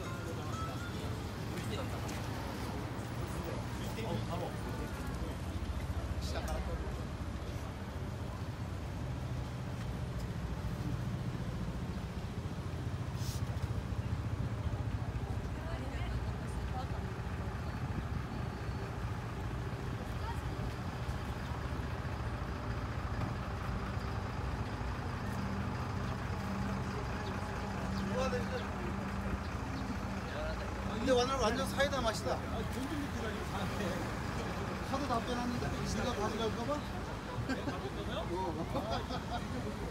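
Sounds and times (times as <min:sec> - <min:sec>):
car and bus engines in traffic: 0:00.0 - 0:39.9
indistinct chatter of passers-by: 0:00.0 - 0:39.9.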